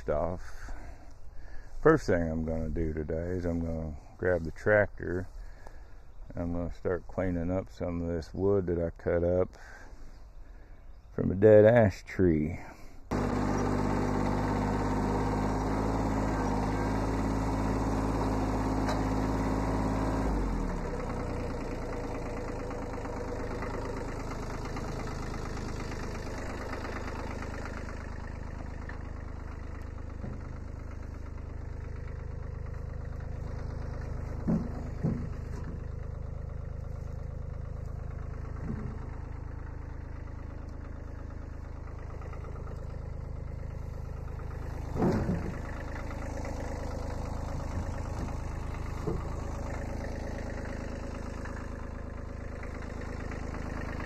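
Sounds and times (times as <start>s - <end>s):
tractor diesel engine running: 0.0s - 54.0s
short knocks: 34.1s - 35.9s, 44.9s - 45.8s.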